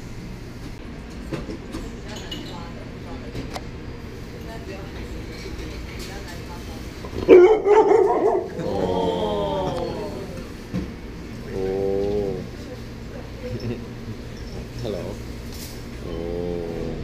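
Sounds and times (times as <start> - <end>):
dog barking: 7.2 - 8.6
dog crying: 7.3 - 10.2.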